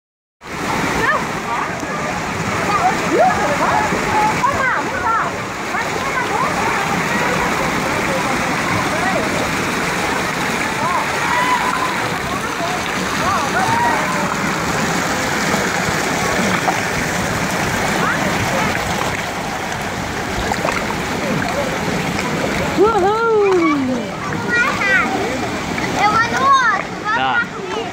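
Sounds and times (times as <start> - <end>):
water rushing down slides: 0.4 - 27.9
water splashing: 0.4 - 27.9
children shouting and chattering: 0.8 - 27.9.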